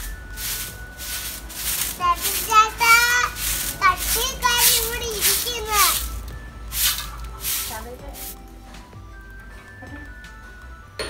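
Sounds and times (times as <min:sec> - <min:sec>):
brush scrubbing stone: 0:00.0 - 0:08.4.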